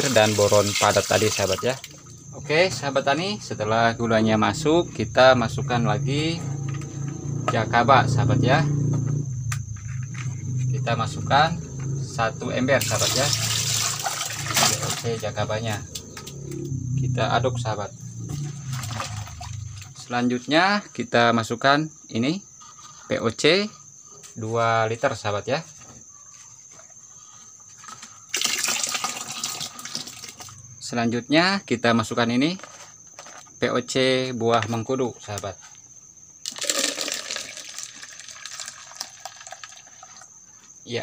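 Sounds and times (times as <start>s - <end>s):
liquid sloshing in plastic bucket: 12.8s - 15.3s, 18.3s - 20.0s, 27.8s - 30.6s, 36.4s - 40.3s.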